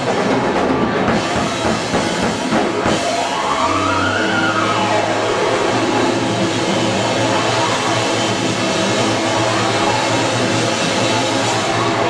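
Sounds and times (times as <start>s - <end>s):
rock band playing distorted noise: 0.0s - 12.0s
low bass drone: 3.5s - 12.0s.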